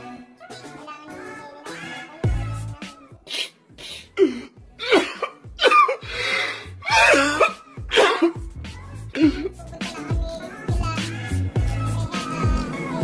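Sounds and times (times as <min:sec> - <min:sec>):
music with deep bass: 0:02.2 - 0:02.8, 0:04.4 - 0:13.0
man sobbing and gasping: 0:03.9 - 0:08.5, 0:09.1 - 0:09.6.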